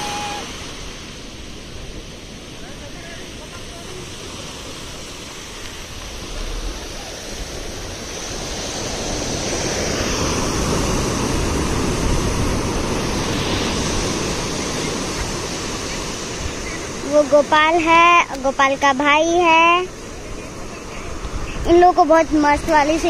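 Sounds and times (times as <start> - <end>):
sea surf breaking on shore: 0.0 - 23.0.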